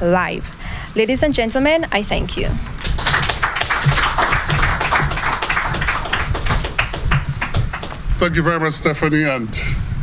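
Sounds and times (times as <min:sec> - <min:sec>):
audience applauding: 0:02.8 - 0:08.1.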